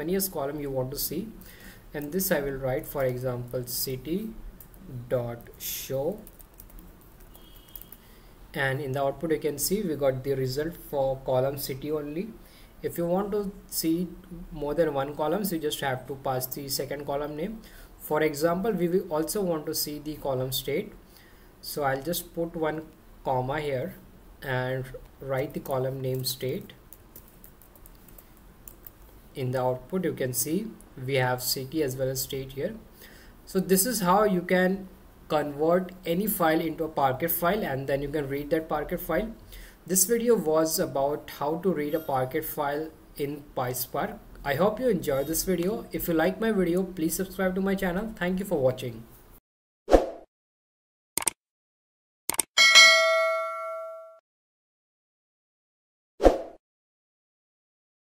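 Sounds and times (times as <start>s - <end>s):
computer keyboard key clicks: 52.3s - 52.5s
bell ding: 52.6s - 54.2s.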